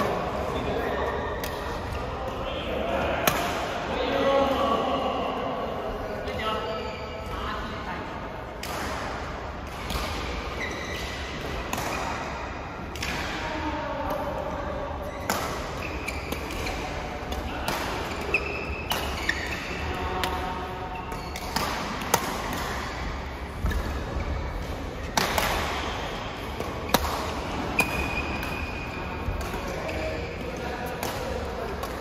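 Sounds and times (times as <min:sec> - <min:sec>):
shoes squeaking on court floor: 0:06.6 - 0:07.4, 0:09.9 - 0:12.1, 0:15.0 - 0:17.2, 0:18.1 - 0:19.9, 0:20.9 - 0:21.6, 0:25.8 - 0:30.6
rackets striking shuttlecock: 0:15.2 - 0:24.1, 0:25.0 - 0:30.1.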